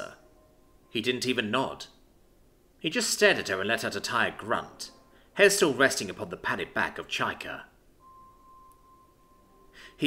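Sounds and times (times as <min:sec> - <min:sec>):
faint steady tone: 0:00.0 - 0:10.0
intake of breath: 0:09.7 - 0:10.0.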